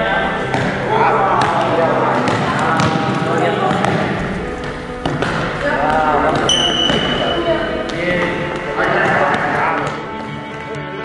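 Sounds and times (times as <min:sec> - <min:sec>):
ball bouncing on hard floor: 0:00.5 - 0:00.8, 0:02.2 - 0:10.0
high whistle blast: 0:06.5 - 0:07.5.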